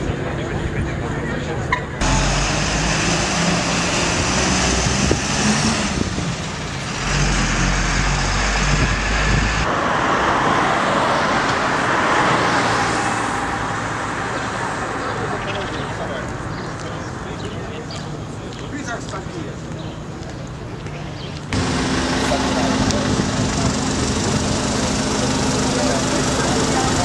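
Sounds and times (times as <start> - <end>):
cars driving past: 1.8 - 18.2, 21.5 - 27.0.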